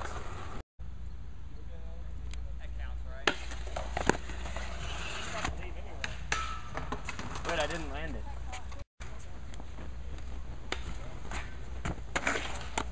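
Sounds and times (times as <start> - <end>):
skateboards clacking on concrete: 3.3 - 8.8, 10.7 - 12.9
voices talking: 7.4 - 12.1.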